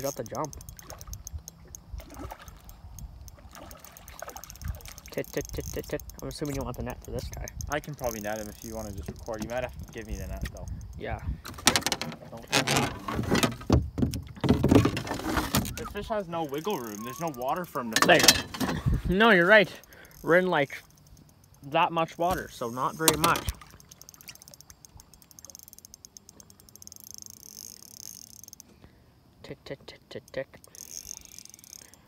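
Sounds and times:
fishing reel drag clicking: 0.0 - 11.0, 15.6 - 18.2, 19.2 - 28.8, 30.2 - 32.0
gear knocking against boat hull: 4.5 - 10.6, 11.5 - 15.8.

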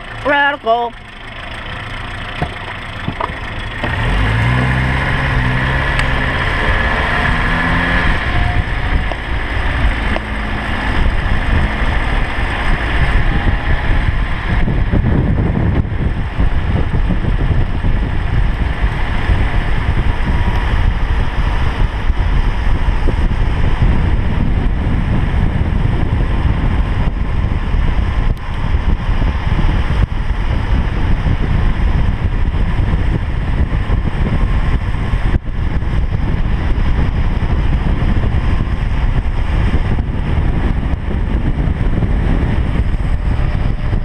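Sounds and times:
car engine accelerating: 0.0 - 44.0
road rumble: 0.0 - 44.0
wind buffeting microphone: 0.0 - 44.0.

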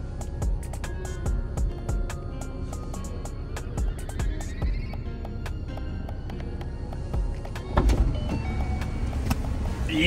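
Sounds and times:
car engine idling: 0.0 - 10.0
music playing: 0.0 - 10.0.

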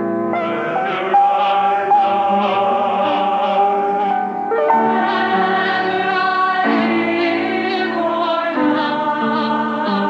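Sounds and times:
choir holding a chord: 0.3 - 10.0.

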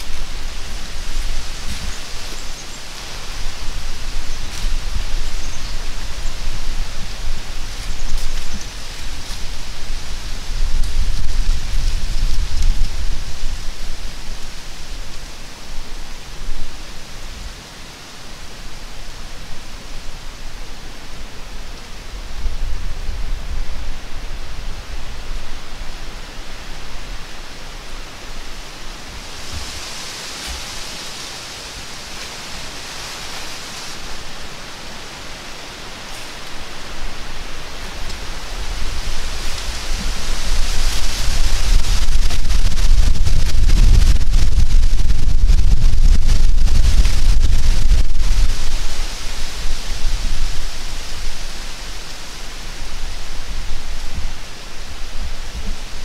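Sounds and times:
wind buffeting microphone: 0.0 - 17.6, 28.2 - 56.0
wind hissing through branches: 0.0 - 56.0.

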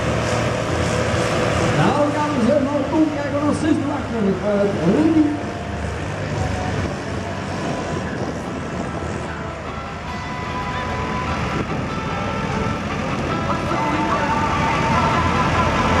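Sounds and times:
diesel tractor engines: 0.0 - 16.0.

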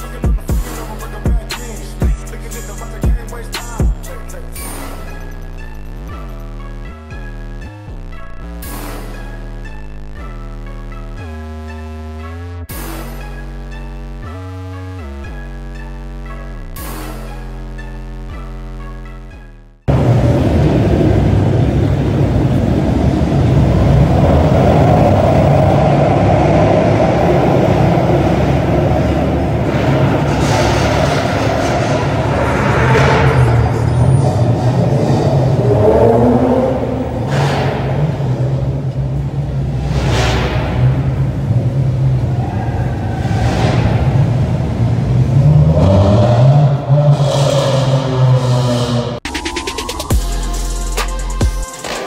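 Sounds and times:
car engines revving: 19.8 - 50.2
rushing sweeps: 19.9 - 50.8.

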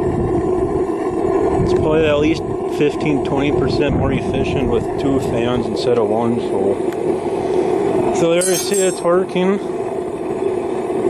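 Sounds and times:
burner and blower fans roaring: 0.0 - 11.0.

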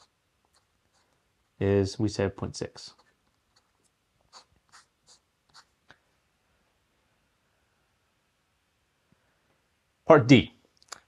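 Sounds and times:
pen nib scratching paper: 0.0 - 1.2, 2.8 - 5.8.

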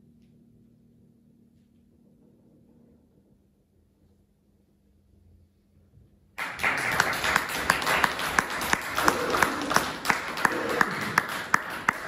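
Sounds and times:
audience applause: 6.4 - 12.0
loud clapper close to microphone: 6.4 - 12.0.

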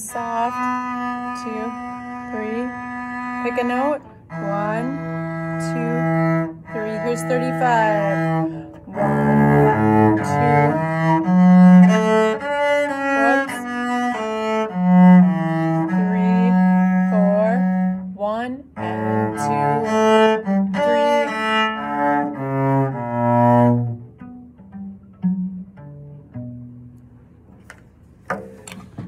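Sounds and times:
cello playing slow melody: 0.0 - 27.6.

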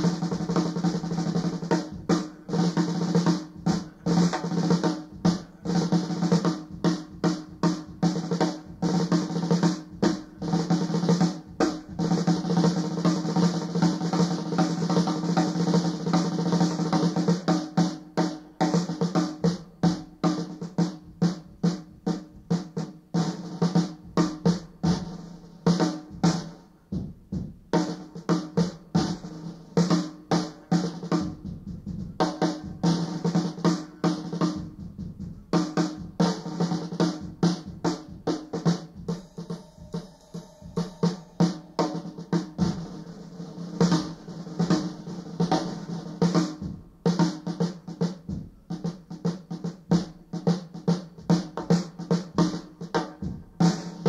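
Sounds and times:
drum kit solo: 0.0 - 54.0.

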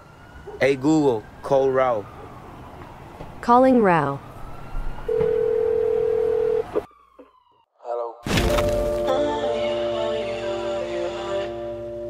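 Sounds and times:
telephone line click: 5.1 - 6.8
telephone ringback beep: 5.1 - 6.8.

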